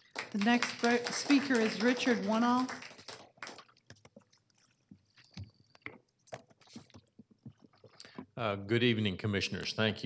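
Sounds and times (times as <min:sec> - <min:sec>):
knocks and rustles at microphone: 0:04.9 - 0:08.4.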